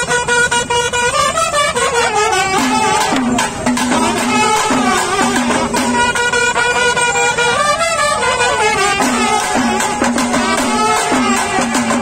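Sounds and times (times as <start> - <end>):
brass horns blowing bending notes: 0.0 - 12.0.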